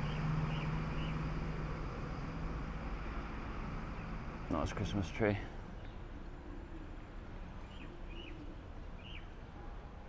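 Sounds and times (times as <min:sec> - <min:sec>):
bird chirps: 0:00.0 - 0:01.2, 0:07.6 - 0:09.3
low outdoor background rumble: 0:00.0 - 0:10.0.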